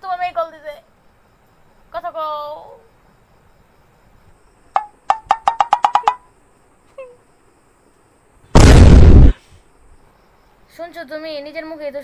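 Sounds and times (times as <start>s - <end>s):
loud rushing burst of noise: 8.6s - 9.4s.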